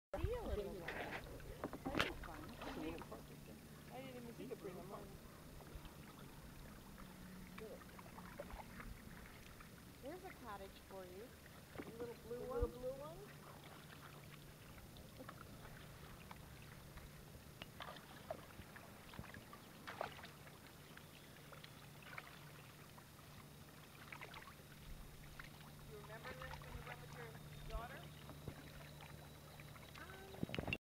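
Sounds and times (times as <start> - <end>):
people talking indistinctly: 0.2 - 5.3, 10.0 - 13.3, 25.9 - 28.1
paddles dipping in water: 0.2 - 30.8.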